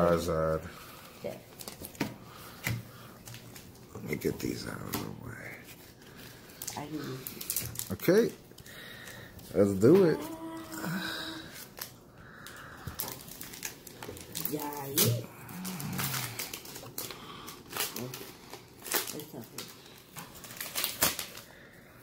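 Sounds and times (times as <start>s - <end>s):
foil wrapper tearing and crinkling: 5.9s - 21.7s.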